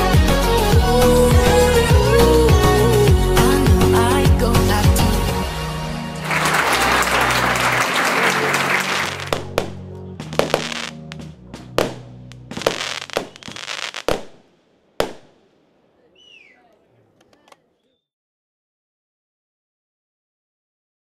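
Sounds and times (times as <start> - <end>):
music: 0.0 - 14.0
fireworks bangs and crackling: 7.3 - 15.6.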